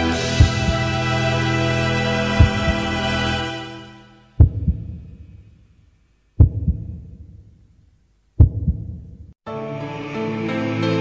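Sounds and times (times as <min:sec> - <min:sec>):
music: 0:00.0 - 0:04.9, 0:09.4 - 0:11.0
heartbeat thuds: 0:00.4 - 0:00.8, 0:02.4 - 0:02.9, 0:04.4 - 0:05.7, 0:06.4 - 0:09.4.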